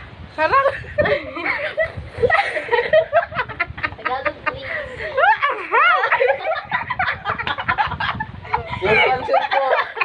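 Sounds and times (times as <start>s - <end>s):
women laughing hard: 0.5s - 10.0s.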